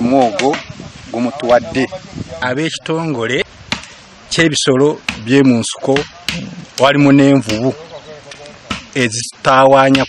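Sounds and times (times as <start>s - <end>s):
man speaking: 0.0s - 3.5s, 4.3s - 10.0s.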